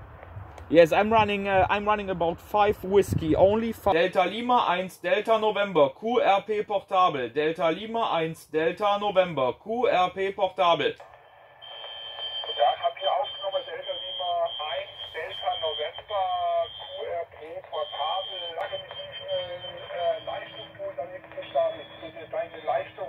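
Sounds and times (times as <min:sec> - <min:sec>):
radio hiss: 0:11.0 - 0:23.0
steady high tone: 0:11.6 - 0:23.0
radio speech through small speaker: 0:12.2 - 0:23.0.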